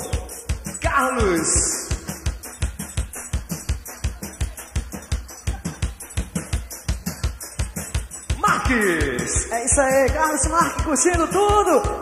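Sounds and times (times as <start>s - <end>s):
drum kit playing groove: 0.0s - 12.0s.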